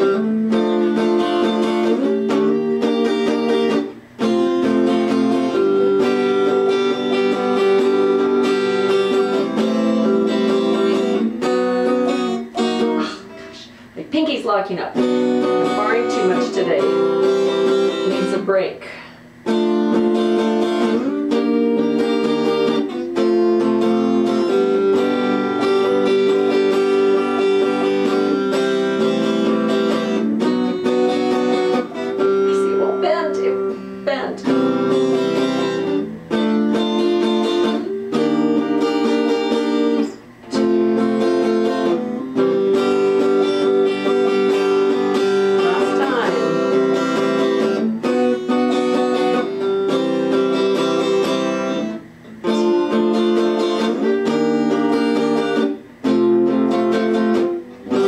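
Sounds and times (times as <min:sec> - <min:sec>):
electric guitar strumming chords: 0:00.0 - 0:58.0.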